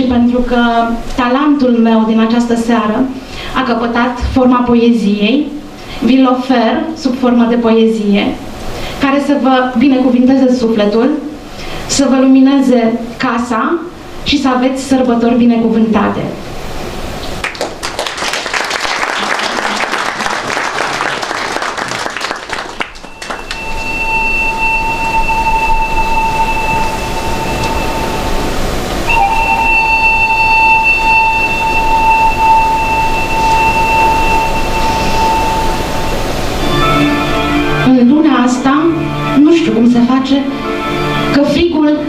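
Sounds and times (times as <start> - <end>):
audience applause: 17.4 - 23.7
instrumental music: 22.9 - 42.0.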